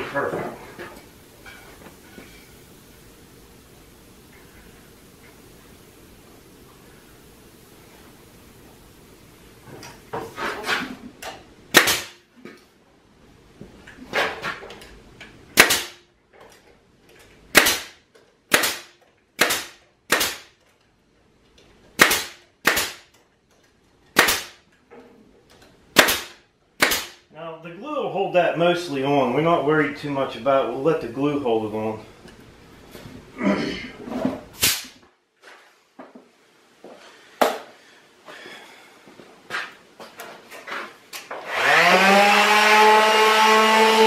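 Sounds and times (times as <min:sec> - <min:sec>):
faint steady background noise: 0:00.0 - 0:44.0
brad nailer firing: 0:11.7 - 0:12.3, 0:15.6 - 0:16.1, 0:17.5 - 0:20.6, 0:21.9 - 0:23.2, 0:24.1 - 0:24.7, 0:25.9 - 0:27.2, 0:34.6 - 0:35.0, 0:41.3 - 0:44.0.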